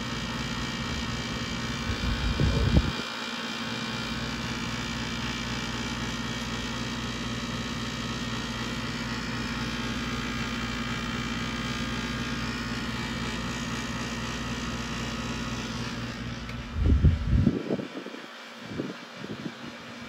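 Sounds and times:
steady electrical hum: 0:00.0 - 0:20.0.

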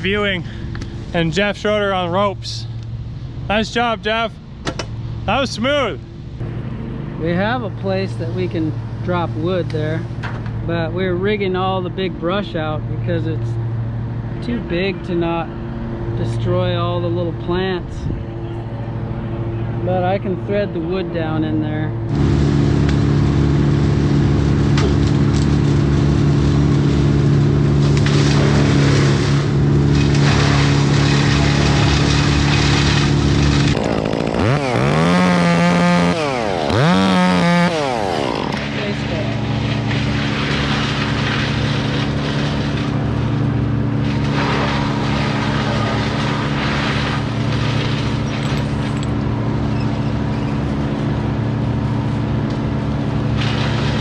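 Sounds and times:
chainsaw running and revving: 0:22.1 - 0:48.3.

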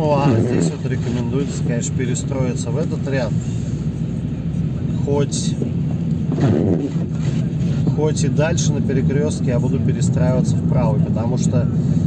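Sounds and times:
car engine hum: 0:00.0 - 0:12.0
tyres on wet road: 0:00.0 - 0:12.0.

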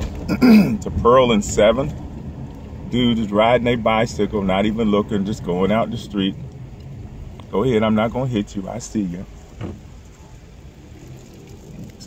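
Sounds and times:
car cabin engine and road rumble: 0:00.0 - 0:12.0.

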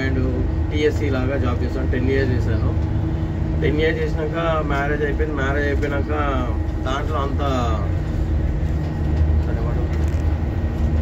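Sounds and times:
bus engine rumble: 0:00.0 - 0:11.0
road noise: 0:00.0 - 0:11.0.

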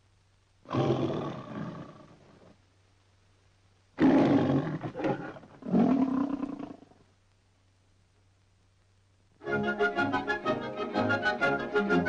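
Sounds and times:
lion roaring: 0:04.0 - 0:06.9.

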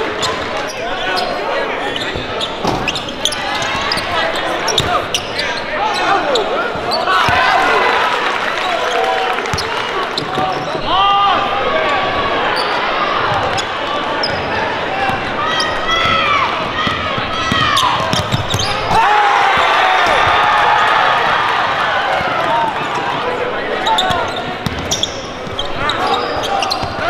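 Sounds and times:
sneakers squeaking: 0:00.0 - 0:07.7, 0:08.6 - 0:11.0, 0:11.8 - 0:20.4, 0:22.1 - 0:27.0
player and crowd voices: 0:00.0 - 0:27.0.

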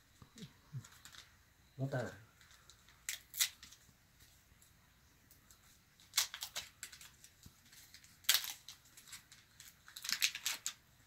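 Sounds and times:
chocolate wrapper crinkling: 0:00.8 - 0:01.3, 0:05.3 - 0:10.9.

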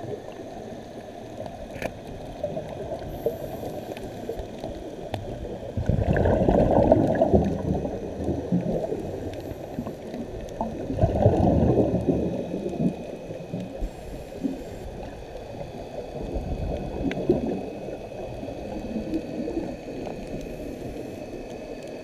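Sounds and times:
muffled water rumble: 0:00.0 - 0:22.0
underwater exhalation bubbles: 0:05.3 - 0:13.7, 0:16.2 - 0:20.4.

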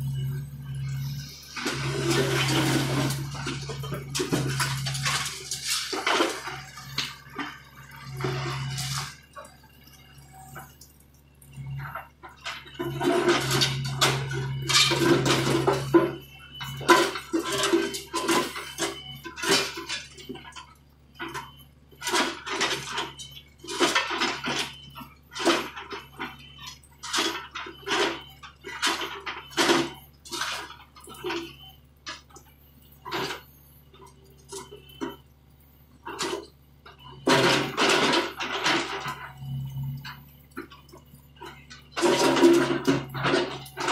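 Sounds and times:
diesel engine humming: 0:00.0 - 0:43.9
bucket scraping concrete and rock: 0:01.4 - 0:09.2.

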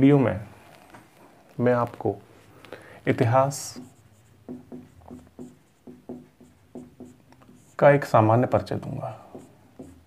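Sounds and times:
marker pen writing on whiteboard: 0:03.0 - 0:10.0.

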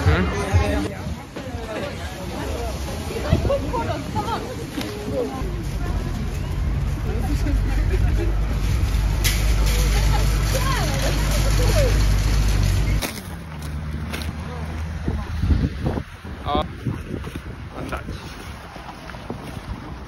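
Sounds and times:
street traffic: 0:00.0 - 0:20.0
idling vehicle rumble: 0:05.4 - 0:14.8.

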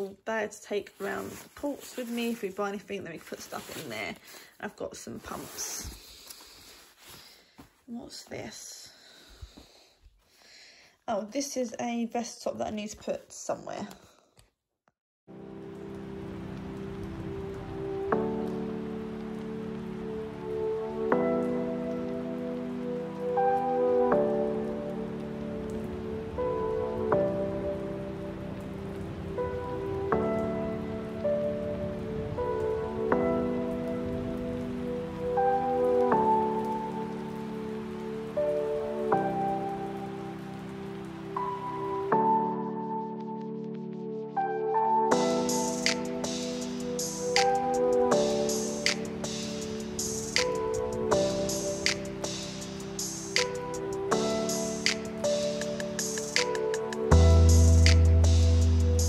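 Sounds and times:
rain-like hiss: 0:15.4 - 0:42.7, 0:45.1 - 0:59.0
soft keyboard chords: 0:15.4 - 0:59.0.

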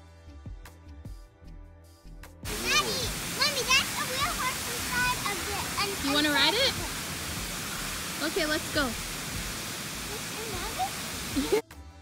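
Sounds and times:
fountain water rushing: 0:02.5 - 0:11.6.

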